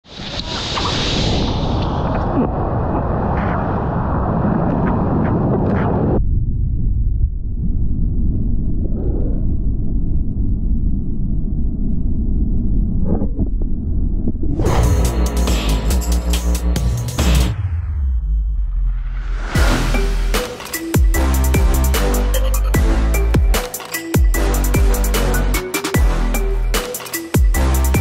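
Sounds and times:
wind on camera: 0.1 - 14.6
muffled water rumble: 1.3 - 14.7.

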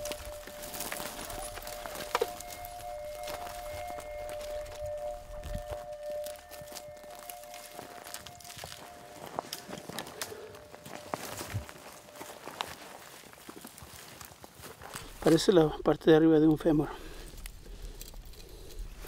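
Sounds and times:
background music held notes: 0.0 - 12.4
footsteps through dry scrub: 0.0 - 19.0.

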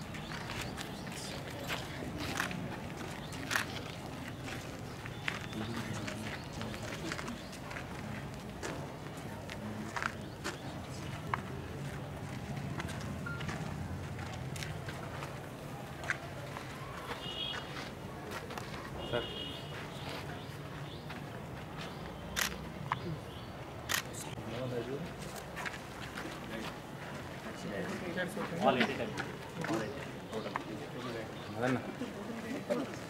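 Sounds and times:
murmur of crowd: 0.0 - 33.0.

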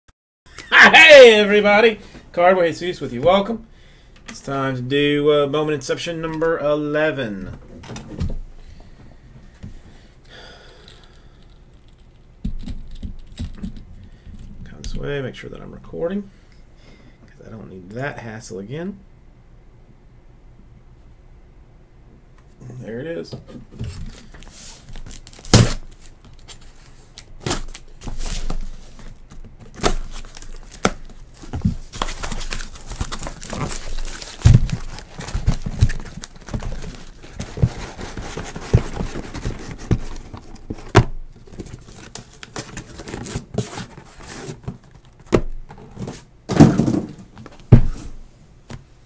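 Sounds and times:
cardboard rustling and tearing: 23.8 - 46.7
boxes knocking and thumping: 28.0 - 48.2.

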